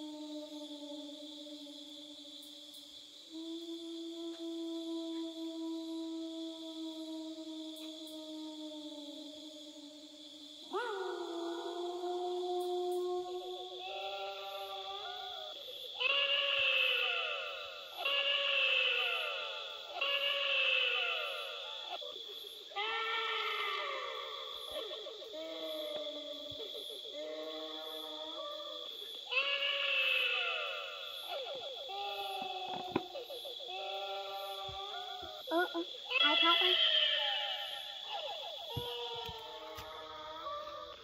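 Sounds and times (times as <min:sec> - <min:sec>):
eerie wailing bleat-like voice: 0:13.8 - 0:15.3, 0:16.0 - 0:22.0, 0:29.3 - 0:33.0, 0:33.7 - 0:41.0.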